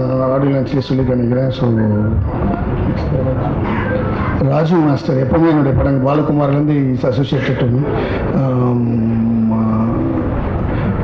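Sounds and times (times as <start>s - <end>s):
man humming into microphone: 8.2s - 11.0s.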